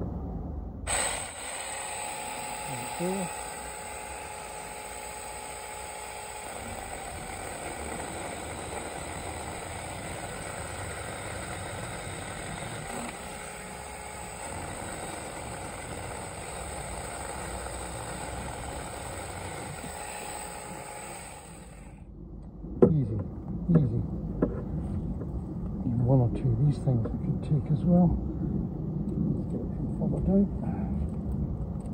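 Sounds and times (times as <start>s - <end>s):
electric chainsaw cutting branch: 0.9s - 22.0s
sharp knocks: 22.8s - 25.4s.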